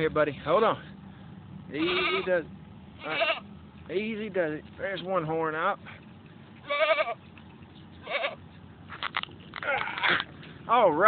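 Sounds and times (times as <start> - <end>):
goat bleating in distress: 1.7 - 2.4, 3.0 - 3.5, 6.6 - 7.2, 8.0 - 8.4, 9.6 - 10.2.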